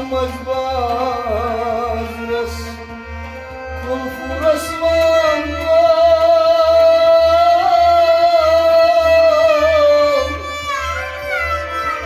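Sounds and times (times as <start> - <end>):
harmonium: 0.0 - 12.0
man singing a long note: 3.8 - 10.8.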